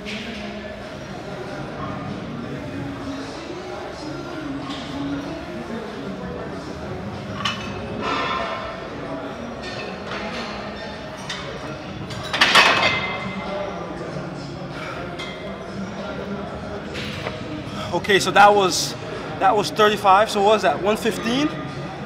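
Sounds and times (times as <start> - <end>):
voices in large hall: 0.0 - 22.0.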